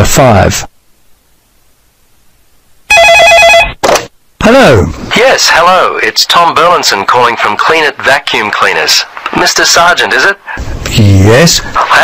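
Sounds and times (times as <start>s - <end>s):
electronic telephone ringing: 2.9s - 3.8s.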